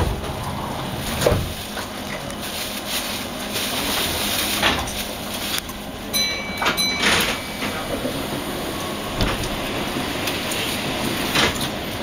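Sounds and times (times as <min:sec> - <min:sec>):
train clunks: 0:00.0 - 0:02.2, 0:04.0 - 0:12.0
electric train rumble: 0:00.0 - 0:12.0.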